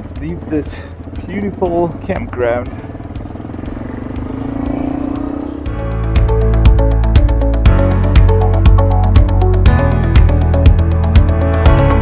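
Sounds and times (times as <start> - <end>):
background music with steady beat: 0.0 - 12.0
motorcycle engine accelerating: 0.0 - 12.0.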